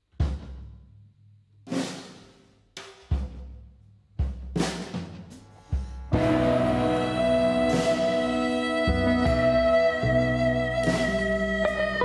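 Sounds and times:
cymbal wash: 5.4s - 10.2s
band playing held chord: 6.1s - 12.0s.

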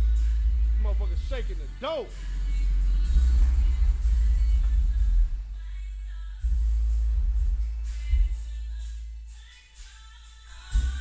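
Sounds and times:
bass-heavy music through car speakers: 0.0s - 11.0s.

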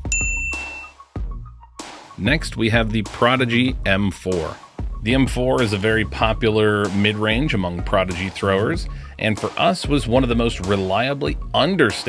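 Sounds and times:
bright ding: 0.0s - 1.0s
background music: 0.0s - 12.0s.

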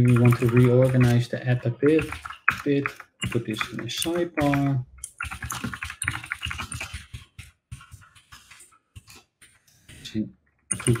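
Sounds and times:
typing on computer keyboard: 0.0s - 9.6s, 10.7s - 11.0s.

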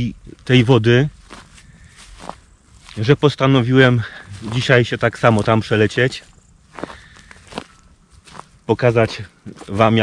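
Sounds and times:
footsteps on grass: 0.0s - 10.0s.

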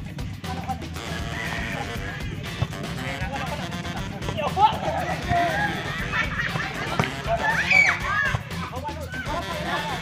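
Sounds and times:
background music: 0.0s - 10.0s
players shouting: 1.0s - 10.0s.

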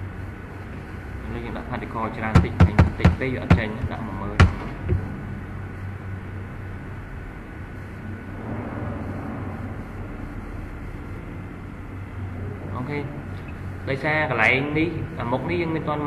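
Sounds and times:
low hum: 0.0s - 16.0s.

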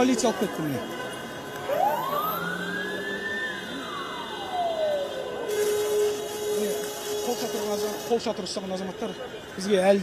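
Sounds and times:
police siren wailing: 0.7s - 6.5s.

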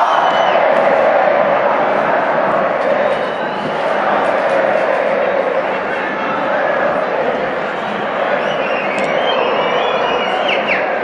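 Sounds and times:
stadium crowd din: 0.0s - 11.0s
high whistle-like tones: 8.4s - 11.0s.

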